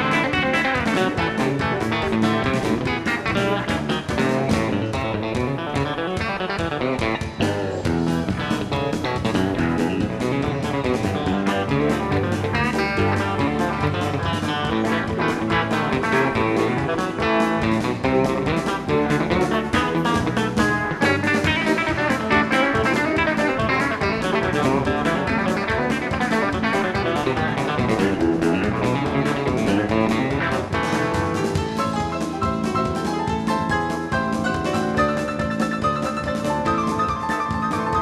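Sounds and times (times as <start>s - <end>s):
electric bass: 0.0s - 38.0s
plucked guitar: 0.0s - 38.0s.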